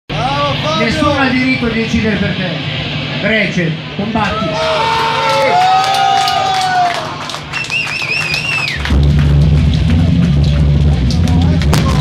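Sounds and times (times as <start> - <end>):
punk band playing: 8.1 - 12.0.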